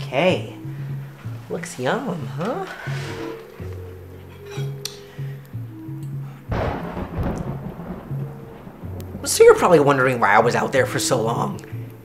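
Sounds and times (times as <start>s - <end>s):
low background music: 0.0s - 12.0s
sudden loud rumble: 6.5s - 11.0s.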